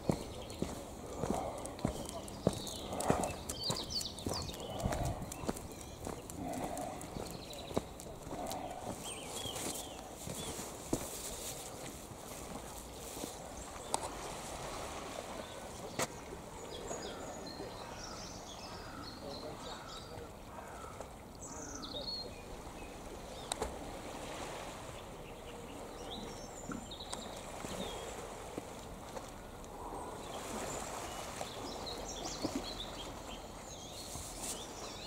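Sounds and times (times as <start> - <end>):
small birds chirping: 0.0 - 11.8, 25.0 - 28.2, 29.3 - 35.0
footsteps on paved path: 0.0 - 14.3.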